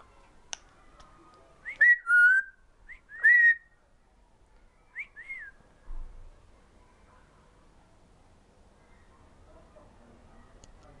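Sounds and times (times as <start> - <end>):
parrot whistling: 3.2 - 3.6.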